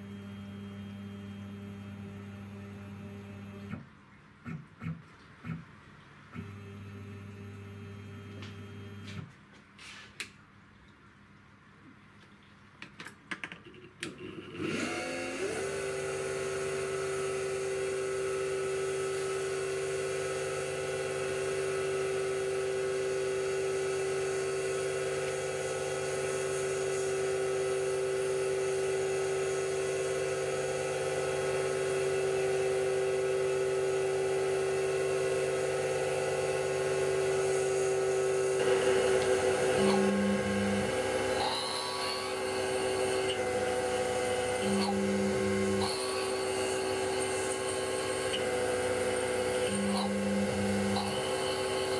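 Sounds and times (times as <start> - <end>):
mill spindle motor whine: 0.0 - 3.8, 6.4 - 9.2, 14.5 - 51.9.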